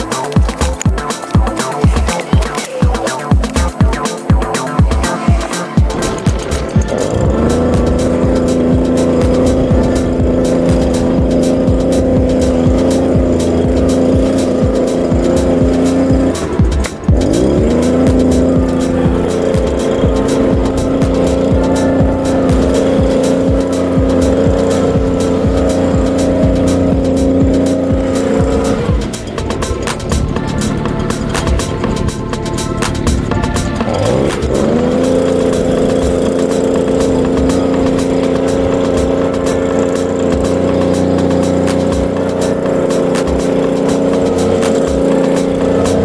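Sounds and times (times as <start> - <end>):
small petrol engine revving: 0.0 - 46.0.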